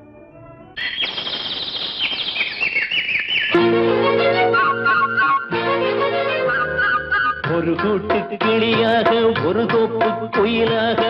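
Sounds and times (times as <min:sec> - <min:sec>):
birds chirping: 0:00.8 - 0:03.7.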